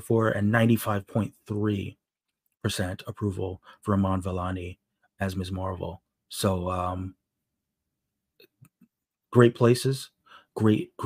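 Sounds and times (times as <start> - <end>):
breath sounds: 10.2 - 10.6.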